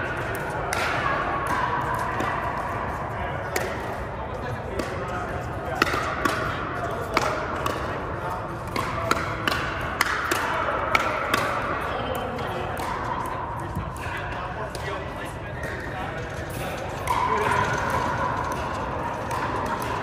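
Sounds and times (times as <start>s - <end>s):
paddles striking ball: 8.7s - 11.9s.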